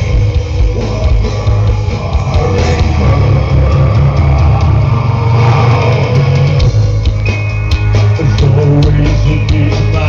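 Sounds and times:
death metal band playing live: 0:00.0 - 0:10.0.

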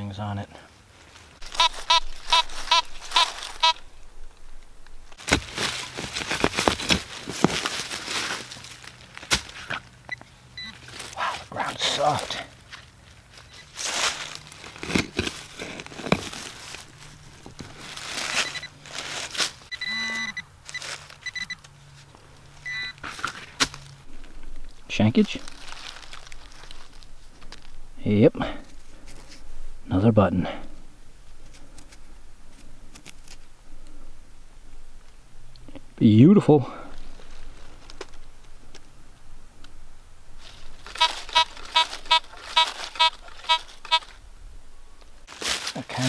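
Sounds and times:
metal detector beeping: 0:01.5 - 0:03.8, 0:10.1 - 0:10.8, 0:18.4 - 0:18.8, 0:19.7 - 0:21.6, 0:22.6 - 0:23.0, 0:40.9 - 0:44.2
shovel digging into soil: 0:13.6 - 0:16.9.

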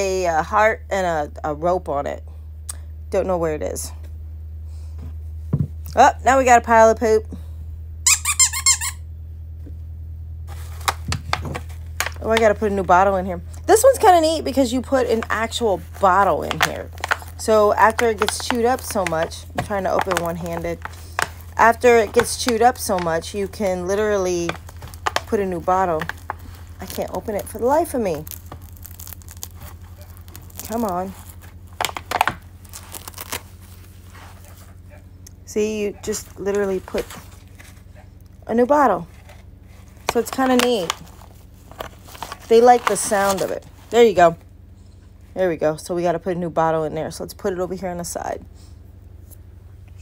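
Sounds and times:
dog toy squeaking: 0:08.0 - 0:09.0
plastic bottle crinkling: 0:15.1 - 0:34.7, 0:39.2 - 0:43.8.

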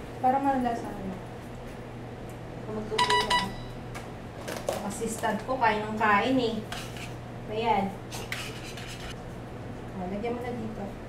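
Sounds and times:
low steady hum: 0:00.0 - 0:11.0
utensil scraping a bowl: 0:06.7 - 0:07.2, 0:08.1 - 0:09.2.

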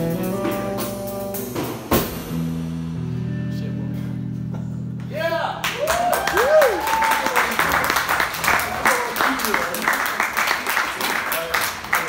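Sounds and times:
audience clapping: 0:05.6 - 0:12.0.

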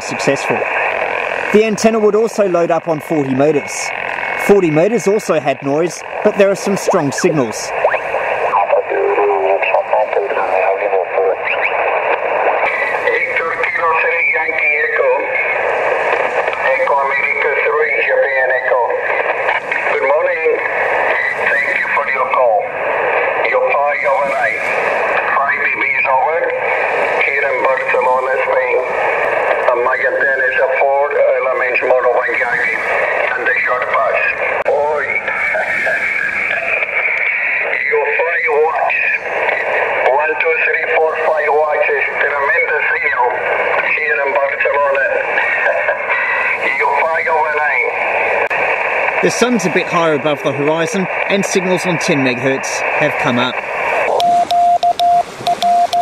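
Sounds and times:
radio band noise hiss: 0:00.0 - 0:56.0
thin radio voice: 0:00.0 - 0:56.0.

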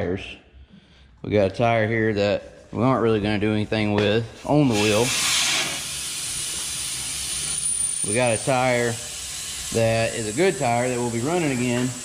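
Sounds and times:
air hissing out of a tire: 0:04.6 - 0:12.0.

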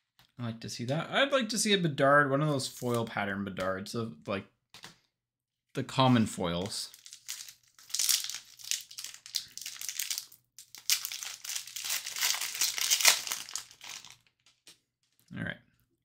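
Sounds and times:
foil wrapper crinkling and tearing: 0:06.9 - 0:14.5.

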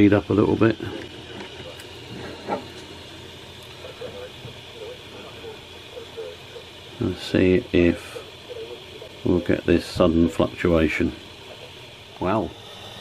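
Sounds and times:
small electric motor whirring: 0:10.4 - 0:13.0.

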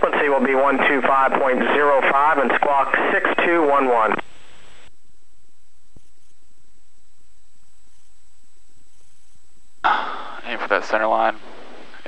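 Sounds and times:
man speaking: 0:00.0 - 0:04.2, 0:10.3 - 0:11.4.

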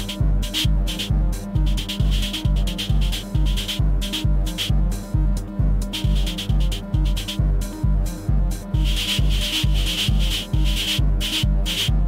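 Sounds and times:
held synth drone: 0:00.0 - 0:12.0
modular synthesizer groove: 0:00.0 - 0:12.0.

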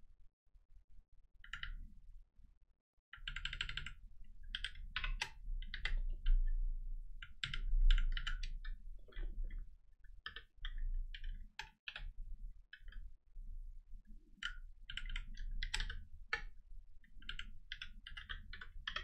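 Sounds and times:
computer keyboard typing: 0:03.2 - 0:06.0, 0:07.2 - 0:08.7, 0:14.9 - 0:16.4, 0:17.2 - 0:19.0.

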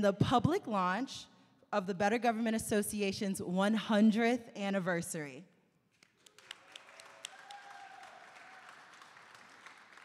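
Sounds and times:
faint audience applause: 0:06.0 - 0:10.0.

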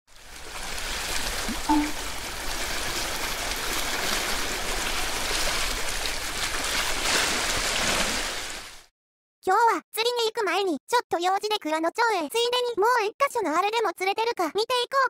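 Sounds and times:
rushing water-like noise: 0:00.1 - 0:08.9.

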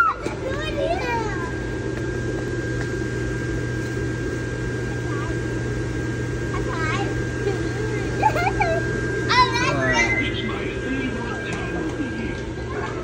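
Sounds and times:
child's voice: 0:00.0 - 0:01.6, 0:06.5 - 0:10.6
store background murmur: 0:00.0 - 0:13.0.

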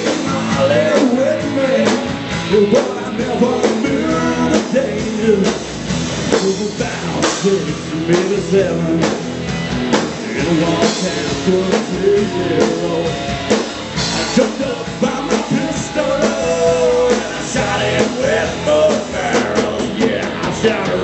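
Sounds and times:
bass guitar: 0:00.0 - 0:21.0
drum kit: 0:00.0 - 0:21.0
electric guitars: 0:00.0 - 0:21.0.

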